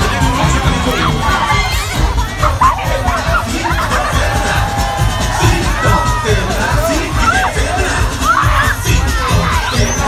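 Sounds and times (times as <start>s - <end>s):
crowd shouting and cheering: 0.0s - 10.0s
parade music with bass beat: 0.0s - 10.0s.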